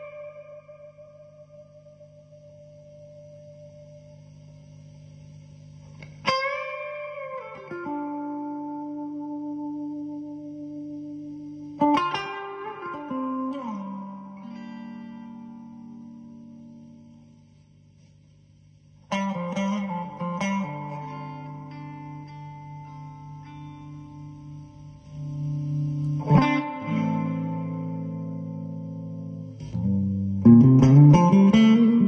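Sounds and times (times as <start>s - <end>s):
electric guitar with reverb: 0.0s - 4.5s, 5.2s - 17.5s, 19.0s - 32.0s.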